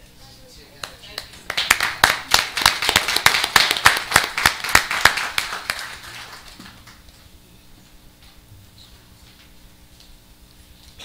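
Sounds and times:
audience applauding: 0:01.2 - 0:07.0.

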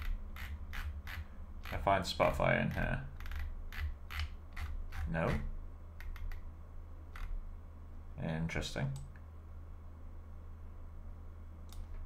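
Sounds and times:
steady low hum: 0:00.0 - 0:12.0
computer mouse clicks: 0:02.7 - 0:05.1, 0:06.0 - 0:06.4, 0:07.2 - 0:07.4, 0:11.7 - 0:11.9.

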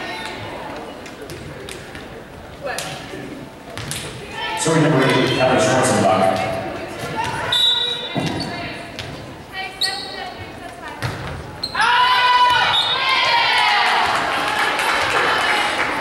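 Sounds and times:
players shouting: 0:04.2 - 0:08.8, 0:11.8 - 0:16.0
whistle blast: 0:07.5 - 0:08.1, 0:12.6 - 0:13.0
spectators cheering: 0:11.8 - 0:16.0.

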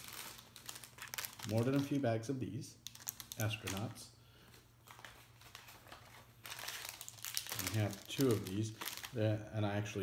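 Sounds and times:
plastic bag crinkling: 0:00.0 - 0:02.1, 0:02.8 - 0:09.4.

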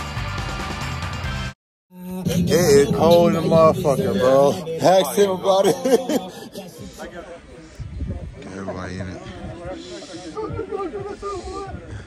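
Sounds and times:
man talking in a raised voice: 0:02.2 - 0:07.5.

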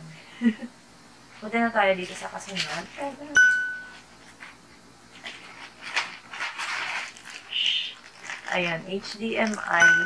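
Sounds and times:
plastic packaging crinkling: 0:03.9 - 0:09.8.

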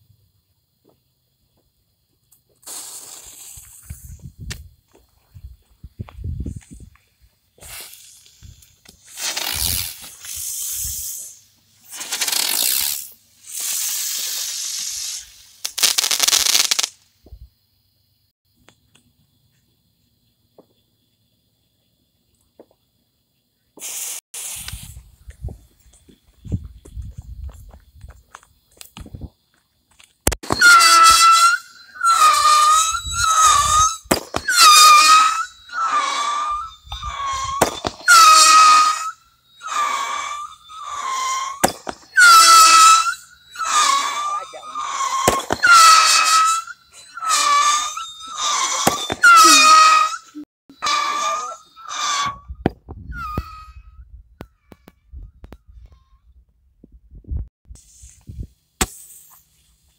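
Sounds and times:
firework pops: 0:02.5 - 0:04.7, 0:11.8 - 0:17.5, 0:23.8 - 0:25.0, 0:33.9 - 0:34.6, 0:41.6 - 0:42.1, 0:48.8 - 0:49.3, 0:58.0 - 0:59.4
brief hiss: 0:02.6 - 0:04.2, 0:23.8 - 0:25.1
whistling firework shots: 0:02.6 - 0:04.7, 0:07.6 - 0:17.5, 0:23.7 - 0:25.2, 0:30.2 - 0:56.0, 0:57.8 - 0:59.5.

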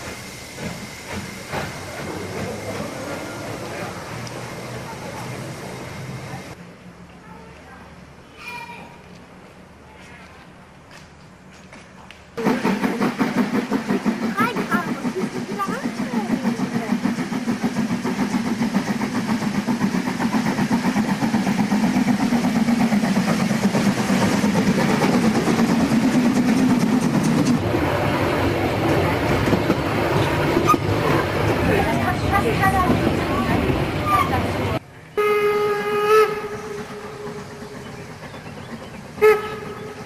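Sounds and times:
steam locomotive working: 0:00.0 - 0:09.8, 0:10.4 - 0:40.0
railway carriage running: 0:00.0 - 0:40.0.

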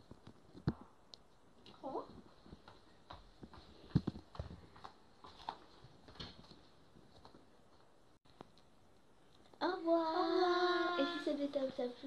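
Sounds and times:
footsteps on hard floor: 0:02.1 - 0:07.4.

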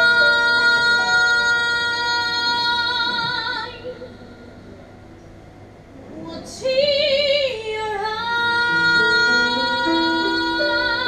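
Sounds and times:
woman singing into microphone: 0:00.0 - 0:04.2, 0:06.1 - 0:11.0.

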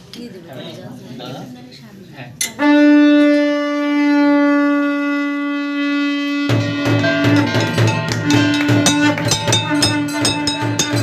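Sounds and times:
conch shell blown long note: 0:02.6 - 0:11.0.

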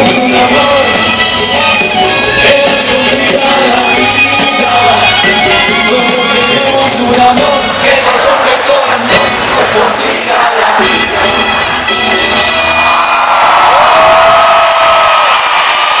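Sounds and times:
live rock band playing: 0:00.0 - 0:13.0
crowd cheering and whooping: 0:11.6 - 0:16.0.

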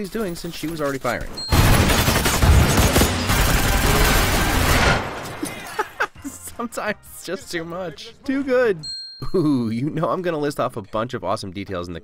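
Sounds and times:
rapid gunfire: 0:01.5 - 0:05.2.

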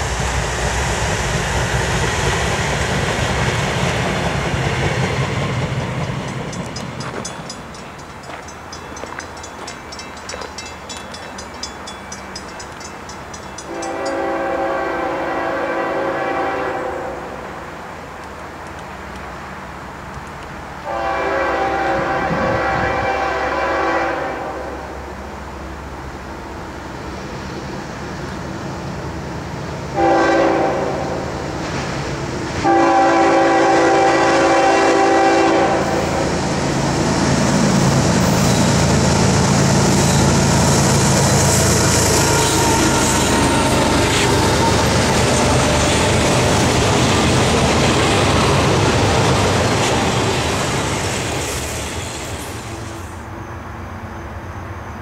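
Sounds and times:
diesel train rumble and hiss: 0:00.0 - 0:55.0
locomotive air horn blasts: 0:13.7 - 0:17.4, 0:20.8 - 0:25.0, 0:30.0 - 0:31.3, 0:32.6 - 0:36.2, 0:41.6 - 0:43.8.

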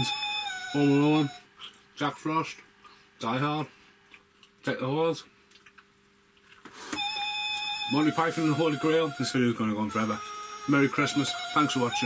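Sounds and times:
steady pitched tone: 0:07.0 - 0:12.0.

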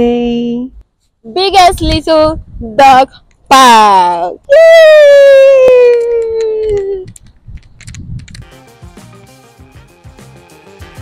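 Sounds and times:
background music: 0:08.4 - 0:11.0.

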